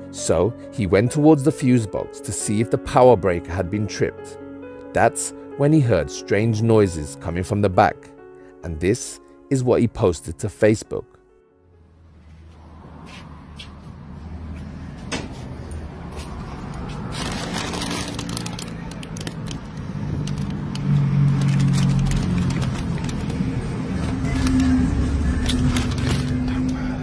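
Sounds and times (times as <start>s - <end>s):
snack bags rustling: 16.8s - 27.0s.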